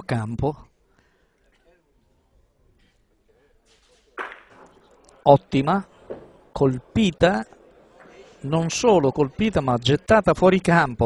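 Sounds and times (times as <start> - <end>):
bocce balls clacking: 4.2 - 5.2, 5.9 - 6.5.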